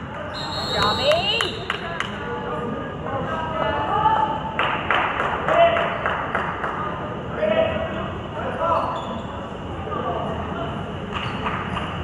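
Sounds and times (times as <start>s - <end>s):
referee's whistle: 0.3s - 1.7s.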